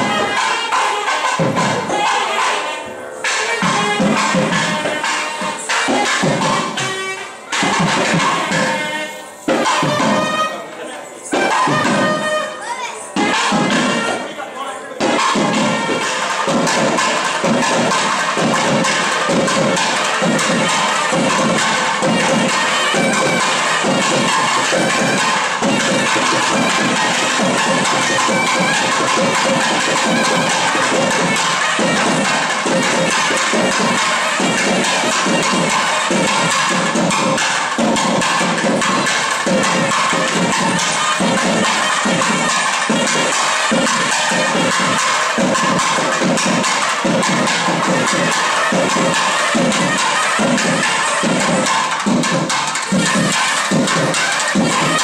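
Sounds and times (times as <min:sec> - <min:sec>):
crowd noise: 0:00.0 - 0:55.0
drums beating steady rhythm: 0:00.0 - 0:55.0
reedy wind instrument tones: 0:00.0 - 0:55.0.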